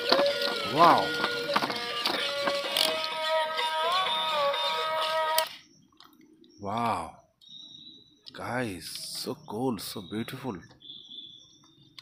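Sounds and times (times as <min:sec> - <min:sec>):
plastic clicks: 0:05.4 - 0:06.6.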